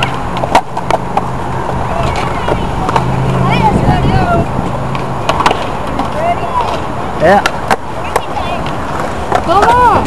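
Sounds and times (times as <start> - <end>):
skateboard wheels rumbling on concrete: 0.0 - 10.0.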